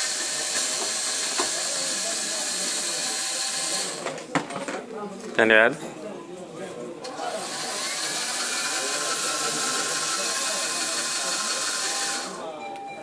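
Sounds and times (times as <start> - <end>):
electric motors whirring: 0.0 - 4.3, 7.1 - 12.5.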